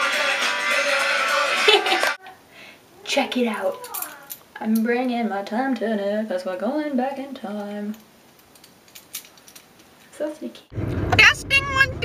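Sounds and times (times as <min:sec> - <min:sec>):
metal chain clinking: 0:03.6 - 0:04.5, 0:07.9 - 0:10.0.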